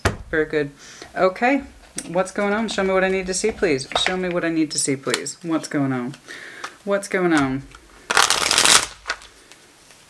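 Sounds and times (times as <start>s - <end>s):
cards riffle shuffling: 7.7s - 9.5s.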